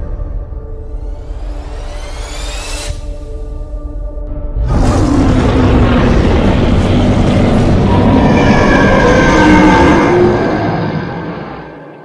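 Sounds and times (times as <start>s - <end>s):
rumbling wall of noise: 4.6s - 11.8s.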